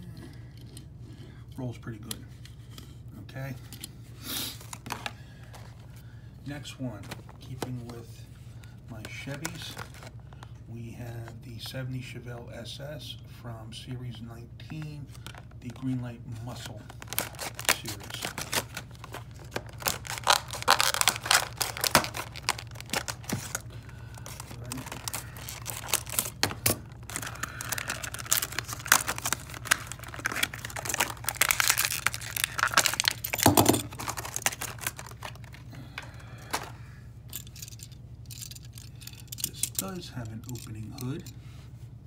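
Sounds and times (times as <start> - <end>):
plastic packaging crinkling: 9.0 - 10.5, 16.5 - 35.7.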